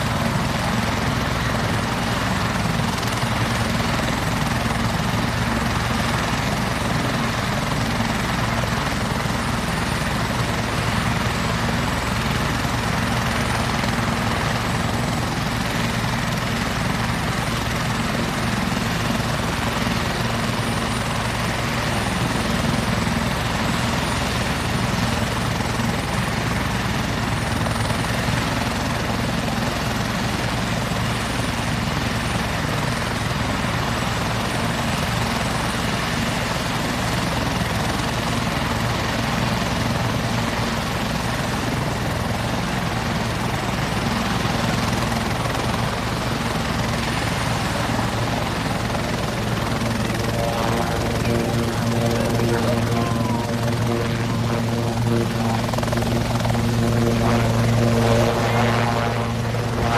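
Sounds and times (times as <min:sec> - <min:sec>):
helicopter rotor and engine din: 0:00.0 - 0:59.9
high turbine whine: 0:47.1 - 0:59.9.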